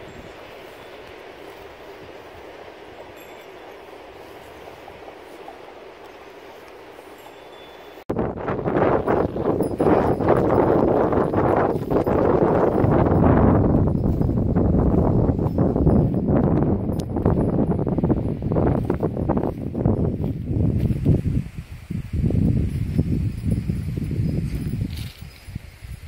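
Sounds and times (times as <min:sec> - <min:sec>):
leafy branches rustling and crackling: 0:00.0 - 0:26.0
wind rumbling on microphone: 0:00.0 - 0:26.0.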